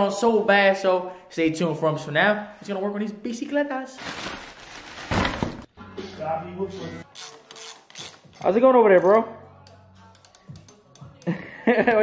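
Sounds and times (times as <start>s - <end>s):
plastic bag rustling: 4.0s - 5.7s.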